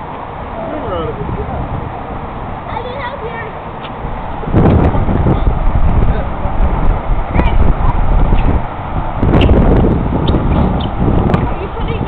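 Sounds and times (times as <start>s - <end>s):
children calling and squealing: 2.6s - 4.0s
low rumble on microphone: 3.5s - 12.0s.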